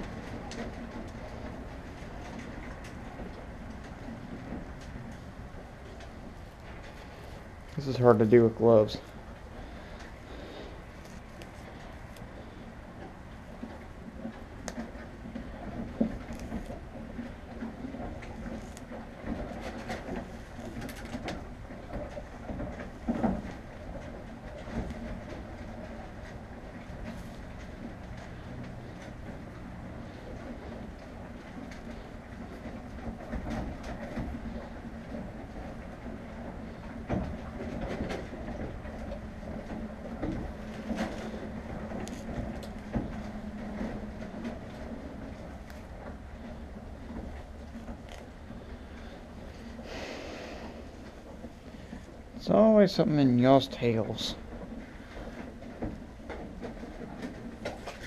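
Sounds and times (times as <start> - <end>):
horse crunching hay: 38.8 - 52.2.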